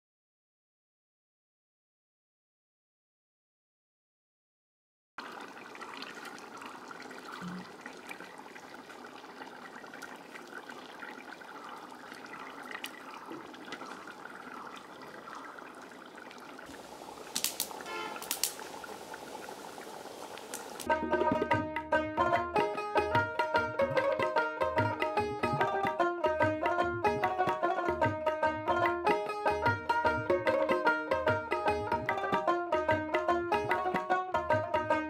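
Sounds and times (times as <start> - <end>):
curry bubbling in pot: 5.2 - 20.9
fire crackling: 12.1 - 20.9.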